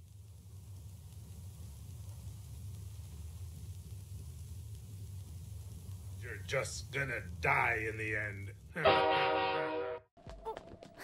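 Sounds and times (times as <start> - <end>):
faint hiss: 0.0 - 8.9.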